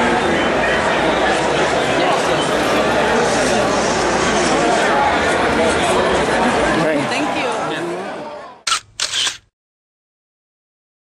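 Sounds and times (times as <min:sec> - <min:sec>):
crowd chatter: 0:00.0 - 0:09.4
camera shutter clicks: 0:08.7 - 0:09.5.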